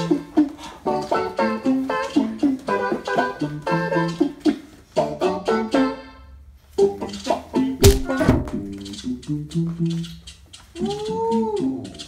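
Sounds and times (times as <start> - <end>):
cha-cha music on keyboard: 0.0 - 6.1
sharp click: 7.8 - 8.9.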